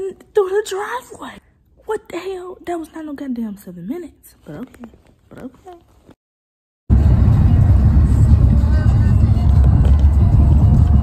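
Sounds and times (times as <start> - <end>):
car rumble from inside cabin: 6.9 - 11.0.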